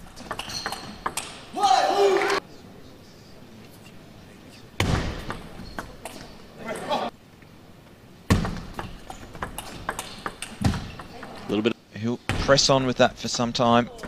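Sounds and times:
crowd noise: 1.1 - 7.2
player shouting: 1.5 - 2.4.

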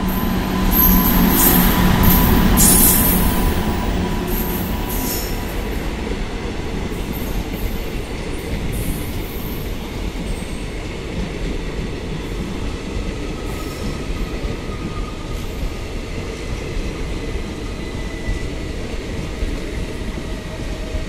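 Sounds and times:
high wheel squeal: 0.0 - 5.8
train wheels rumbling on rails: 0.0 - 21.0.

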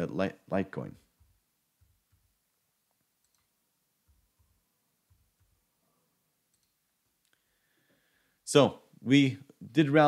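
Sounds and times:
faint computer mouse clicks: 3.2 - 3.5, 6.5 - 7.4.

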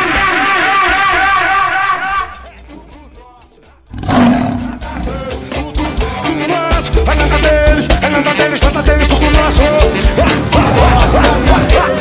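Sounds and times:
music with a beat: 2.2 - 3.9, 4.5 - 12.0
lion roaring: 3.9 - 5.2.

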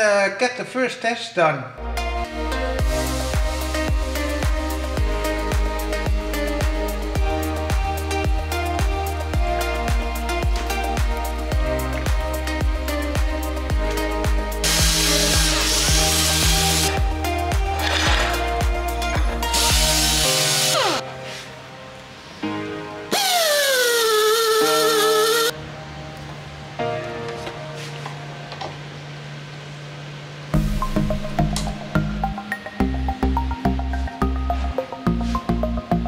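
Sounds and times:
background music: 1.8 - 29.1, 30.6 - 36.0
air hiss bursts: 14.6 - 17.0, 19.4 - 21.6, 23.1 - 25.5
pneumatic tapping arm whining: 23.1 - 25.5.

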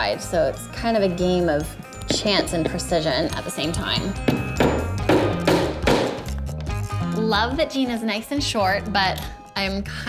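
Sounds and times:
hammer tapping nails into wood: 4.2 - 6.2.

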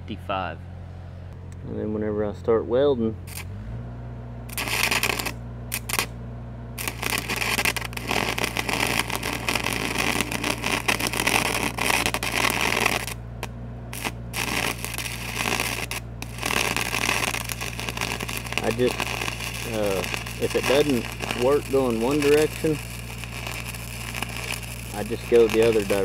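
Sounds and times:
welder engine drone: 0.6 - 26.0
welding arc crackling: 3.2 - 3.5, 4.5 - 6.2, 6.8 - 26.0.

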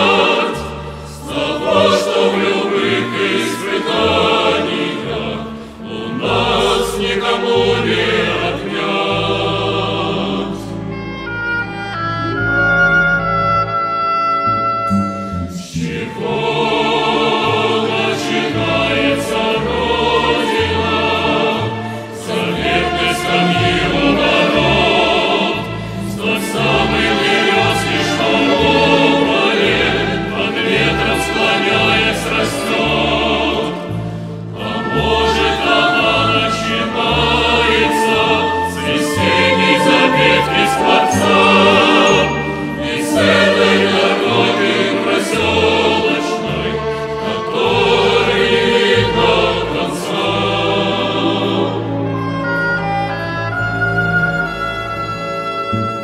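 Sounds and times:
mixed choir singing slow song: 0.0 - 11.0, 15.7 - 52.1
instrumental accompaniment with bass: 0.0 - 56.0
singers breathing: 0.8 - 1.2, 5.5 - 5.9, 25.6 - 26.2.

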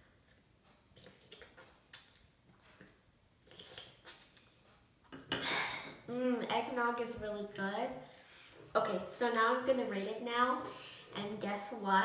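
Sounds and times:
sips and swallows: 1.0 - 4.5.

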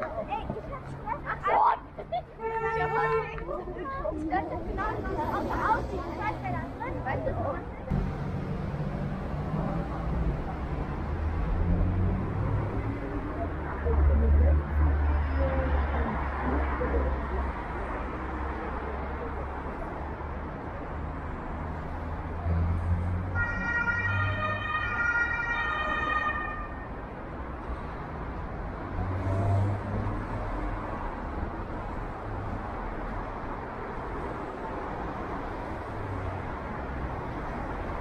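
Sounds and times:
city street traffic rumble: 0.0 - 38.0
emergency vehicle siren: 23.3 - 27.0.

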